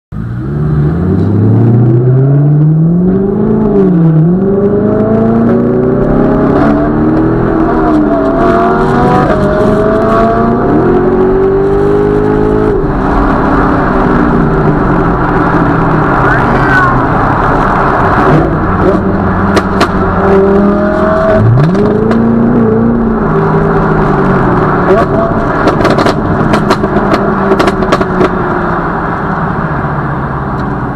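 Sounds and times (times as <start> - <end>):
sports car engine accelerating: 0.2 - 30.9.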